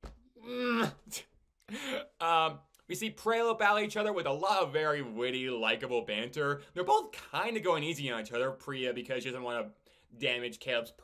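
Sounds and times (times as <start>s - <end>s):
man moaning: 0.4s - 1.2s.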